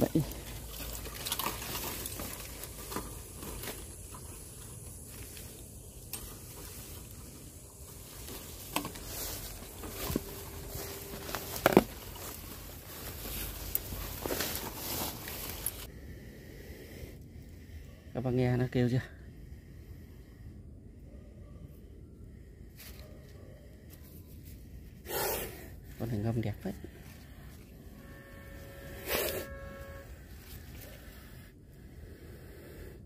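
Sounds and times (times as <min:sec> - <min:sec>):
footsteps rustling through undergrowth: 0:00.0 - 0:15.9
twigs snapping: 0:00.2 - 0:04.3.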